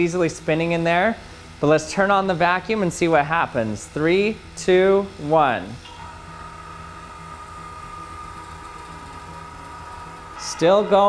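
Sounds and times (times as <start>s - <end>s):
vacuum pump running: 0.0s - 11.0s.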